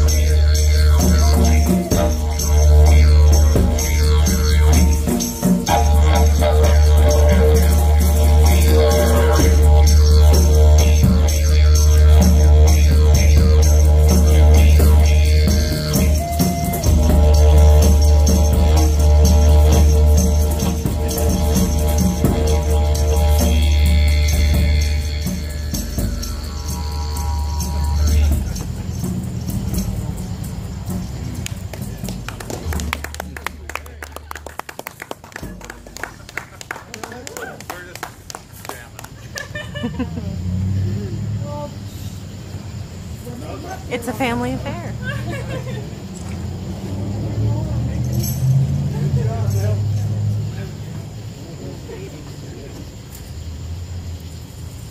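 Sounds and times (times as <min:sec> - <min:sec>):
flute melody: 0:00.0 - 0:28.8
djembe strokes: 0:00.0 - 0:33.2
didgeridoo drone: 0:00.0 - 0:34.5, 0:44.1 - 0:54.1
sharp claps or clicks: 0:31.4 - 0:39.5
people laughing: 0:32.3 - 0:41.2, 0:44.8 - 0:46.4, 0:48.8 - 0:49.9.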